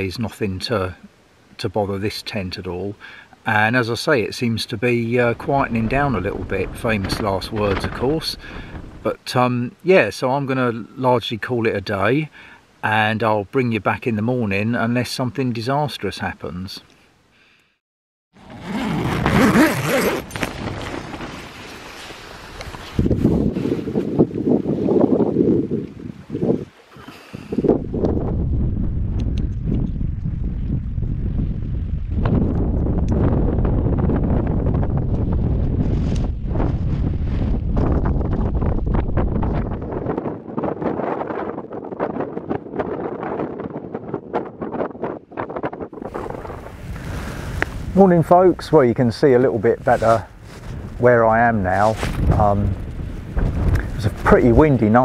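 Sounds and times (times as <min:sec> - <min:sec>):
wind rushing over microphone: 0:05.1 - 0:09.1, 0:18.6 - 0:55.0.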